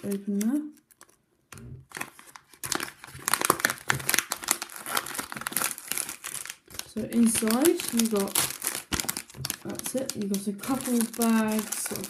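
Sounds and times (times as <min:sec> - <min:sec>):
plastic pouch crinkling: 0:00.0 - 0:12.0.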